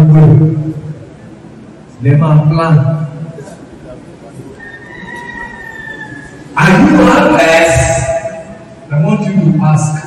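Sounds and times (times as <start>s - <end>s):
man speaking over loudspeakers: 0.0s - 0.9s, 2.0s - 4.4s, 6.6s - 10.0s
hum of large hall: 0.0s - 10.0s.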